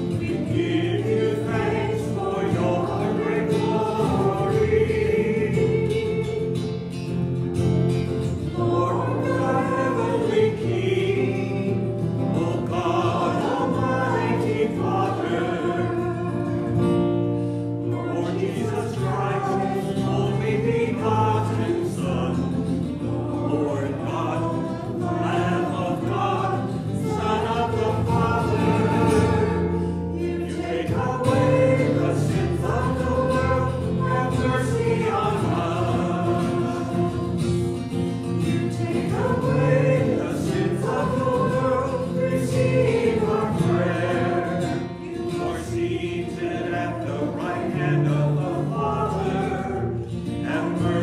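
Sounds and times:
choir singing liturgy: 0.0 - 51.0.

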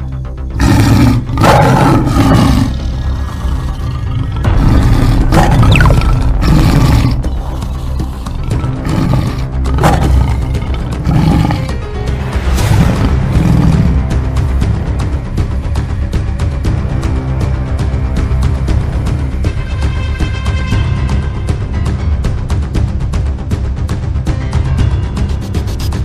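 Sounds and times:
background music: 0.0 - 26.0
tiger roaring: 0.5 - 14.3.

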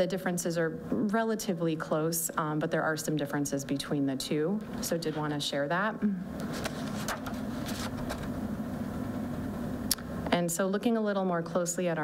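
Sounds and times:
woman humming steadily: 6.0 - 6.4.

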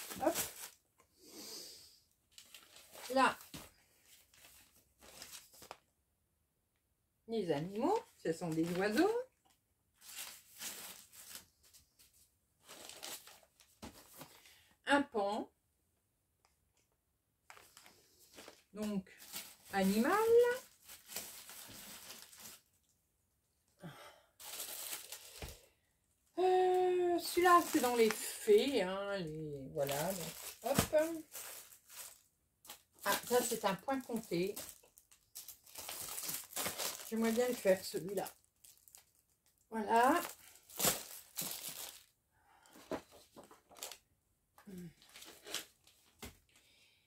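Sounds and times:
plastic bags crinkling: 0.0 - 0.8, 2.3 - 5.8, 8.5 - 9.2, 10.0 - 11.6, 12.6 - 14.4, 17.5 - 22.9, 24.4 - 25.7, 27.2 - 28.9, 29.6 - 42.2, 43.4 - 44.0
woman speaking: 0.2 - 0.4, 3.1 - 3.4, 7.3 - 9.3, 14.9 - 15.5, 18.8 - 20.6, 26.4 - 31.3, 33.0 - 34.6, 37.1 - 38.4, 39.7 - 40.3.

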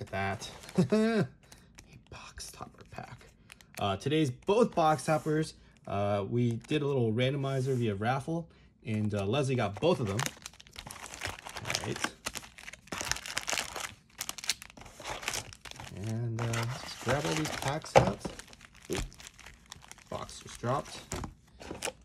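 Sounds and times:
foil wrappers crinkling: 9.0 - 22.0.

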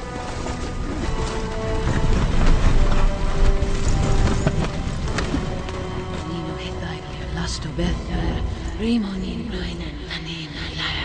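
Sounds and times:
hooves splashing through river: 0.0 - 6.8
orchestral film music: 0.0 - 11.0.

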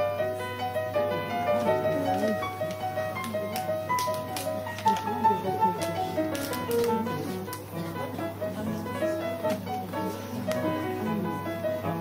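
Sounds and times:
piano operetta accompaniment: 0.0 - 12.0.

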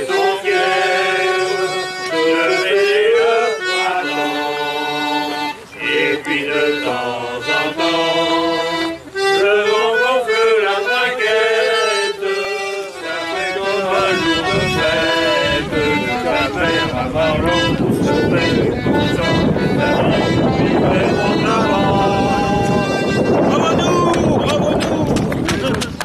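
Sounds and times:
group of people singing: 0.0 - 24.7
button accordion playing: 0.0 - 24.9.

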